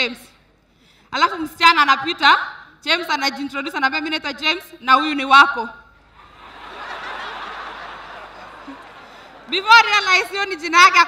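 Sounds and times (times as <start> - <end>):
audience laughing: 6.2 - 10.1.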